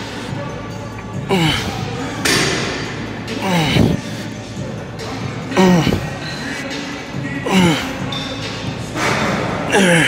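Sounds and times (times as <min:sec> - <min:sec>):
man grunting: 0:09.7 - 0:10.0.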